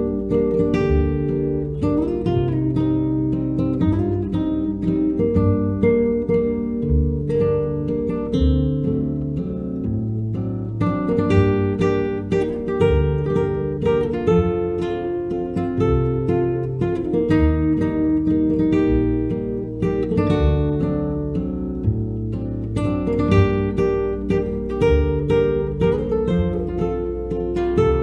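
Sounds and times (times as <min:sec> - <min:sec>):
acoustic guitar chords: 0:00.0 - 0:28.0
low bass notes: 0:00.0 - 0:28.0.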